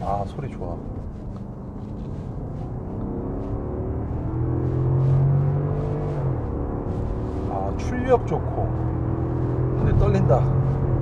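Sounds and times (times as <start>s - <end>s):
car engine accelerating hard: 0.0s - 11.0s.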